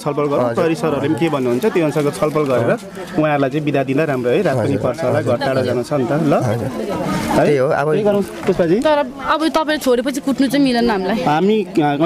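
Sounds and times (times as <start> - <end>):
man talking: 0.0 - 6.8.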